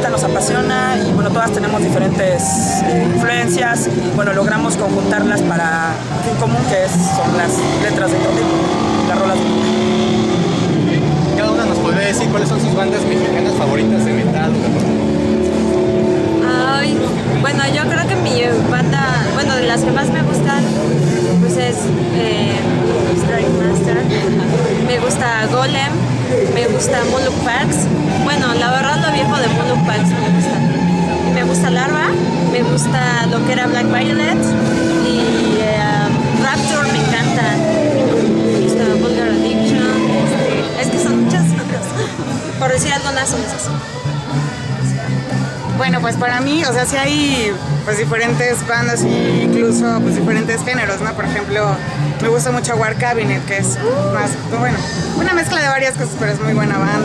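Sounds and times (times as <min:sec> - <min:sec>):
people talking: 0:00.0 - 0:10.2, 0:10.9 - 0:15.6, 0:16.4 - 0:43.8, 0:45.7 - 0:57.0
background music: 0:00.0 - 0:57.0
loud steady low hum: 0:00.0 - 0:57.0
woman speaking: 0:16.4 - 0:20.8, 0:21.4 - 0:30.6, 0:31.3 - 0:37.8, 0:38.6 - 0:43.6.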